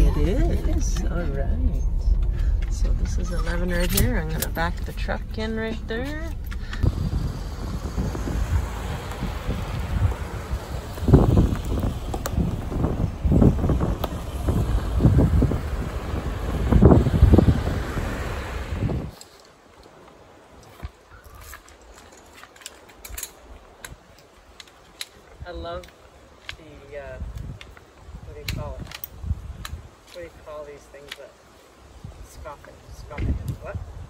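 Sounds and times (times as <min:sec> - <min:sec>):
gusty wind on microphone: 0:00.0 - 0:19.2, 0:26.6 - 0:30.0, 0:31.9 - 0:34.0
camp chair poles clicking: 0:19.1 - 0:26.7, 0:27.3 - 0:31.3.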